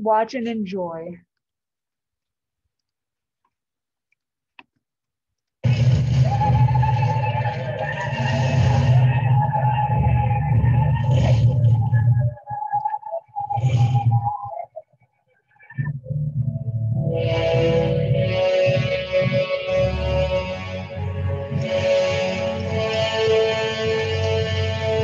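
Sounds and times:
loud film music with low rumble: 5.6 - 14.5, 15.8 - 25.0.

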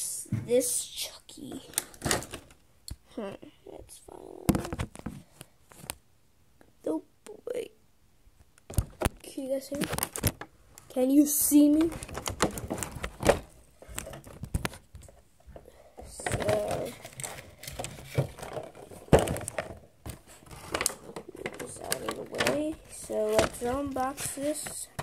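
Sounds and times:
child mumbling: 3.0 - 4.7, 16.0 - 17.1
packaging crinkling: 11.8 - 14.8, 16.2 - 24.7.

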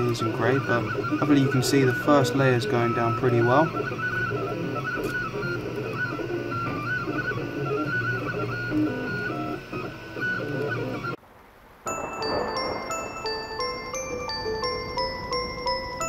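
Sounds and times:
printer stepper motors whining: 0.0 - 11.2, 12.0 - 16.0.

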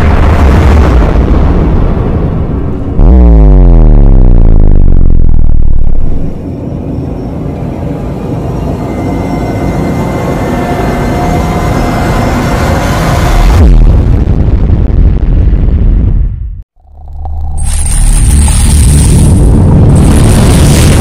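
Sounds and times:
deep power-down sound effect: 0.0 - 6.4, 16.8 - 21.0
electronic drone with high tones: 16.8 - 21.0.

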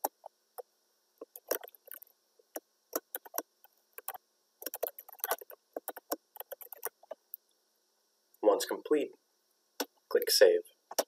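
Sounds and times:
computer keyboard typing: 1.2 - 2.0, 2.9 - 3.4, 4.0 - 7.2.

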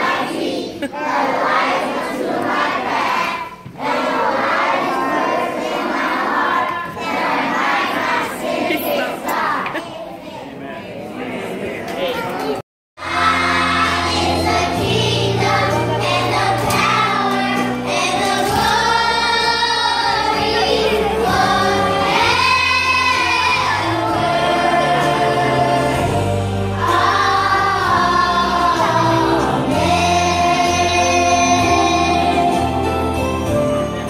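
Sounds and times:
children singing: 0.0 - 9.9, 12.2 - 33.2.

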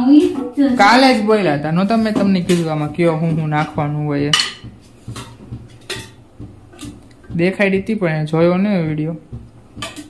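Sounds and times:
metal utensils clinking: 2.1 - 7.0, 9.8 - 10.0.

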